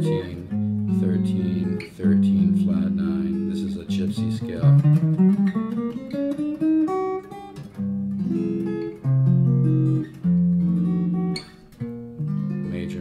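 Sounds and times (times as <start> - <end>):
guitar strumming jazz chords: 0.0 - 13.0.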